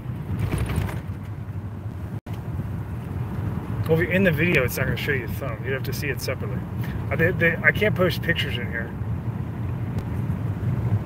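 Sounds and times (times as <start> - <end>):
vehicle engine hum inside car: 0.0 - 11.0.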